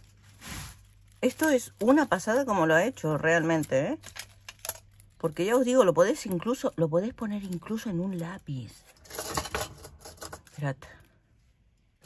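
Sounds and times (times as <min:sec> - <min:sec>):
faint paper rustling: 0:00.0 - 0:04.4.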